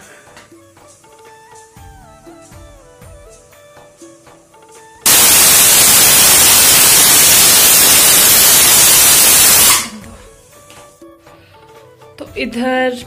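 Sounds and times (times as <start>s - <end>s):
pressure cooker whistle hissing: 5.1s - 10.0s.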